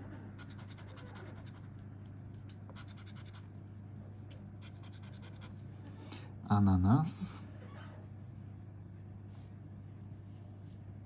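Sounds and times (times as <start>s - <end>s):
low steady hum: 0.0s - 11.0s
scratching lottery ticket: 0.4s - 1.8s, 2.8s - 3.5s, 4.6s - 5.6s.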